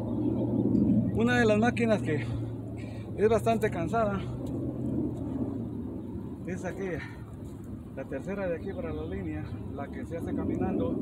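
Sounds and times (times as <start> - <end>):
constant hum: 0.0 - 11.0
low outdoor rumble: 0.0 - 11.0.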